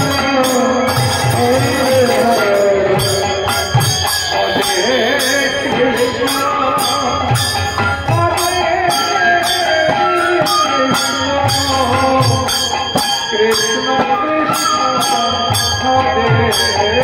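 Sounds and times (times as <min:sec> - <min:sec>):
hand cymbals striking: 0:00.0 - 0:17.0
wavering melody: 0:00.0 - 0:17.0.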